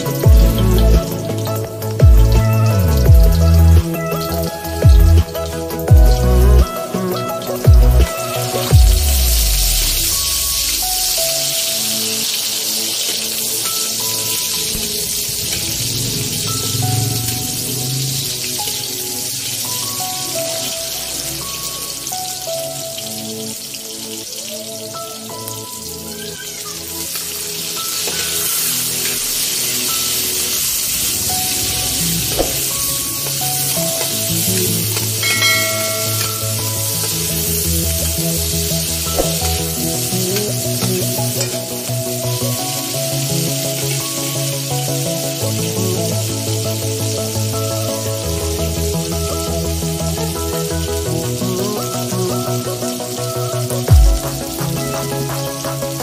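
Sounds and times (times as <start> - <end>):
background music: 0.0 - 56.0
oil sizzling in a wok: 0.0 - 56.0.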